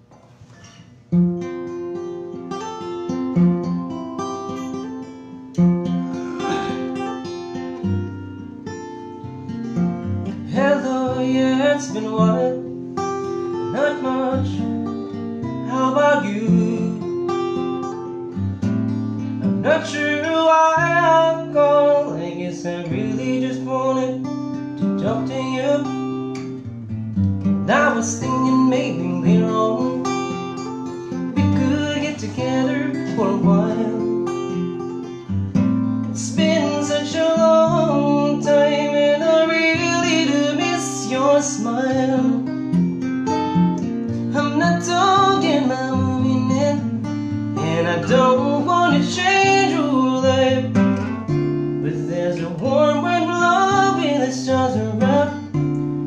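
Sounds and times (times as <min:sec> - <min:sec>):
acoustic guitar strumming: 0:00.0 - 0:56.0
man singing: 0:10.3 - 0:12.8, 0:13.4 - 0:17.7, 0:19.4 - 0:26.6, 0:27.6 - 0:34.9, 0:36.0 - 0:42.8, 0:44.1 - 0:55.8.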